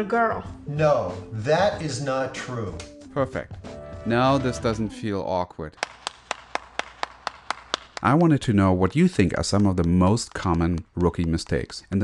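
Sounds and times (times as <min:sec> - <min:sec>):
person clapping hands: 0:02.8 - 0:03.0, 0:05.8 - 0:08.3, 0:09.0 - 0:12.0.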